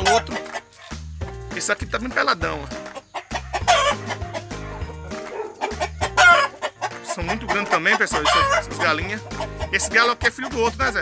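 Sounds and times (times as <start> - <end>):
chickens calling loudly: 0.0 - 11.0
music with repeating bass line: 0.0 - 11.0.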